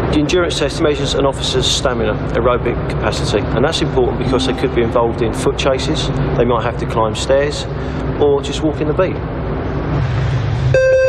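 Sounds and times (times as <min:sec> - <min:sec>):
steady electronic beep tone: 0:04.2 - 0:06.4.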